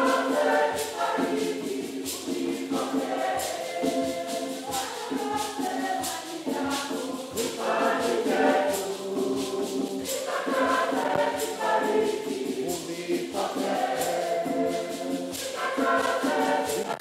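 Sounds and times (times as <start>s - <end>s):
choir singing a hymn: 0.0s - 17.0s
hand percussion beat: 0.0s - 17.0s.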